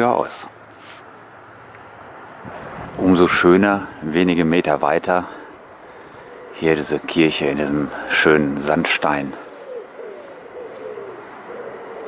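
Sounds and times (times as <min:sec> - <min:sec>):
songbird high chirps: 0:02.2 - 0:03.2, 0:04.4 - 0:12.0
bird cooing: 0:05.2 - 0:12.0.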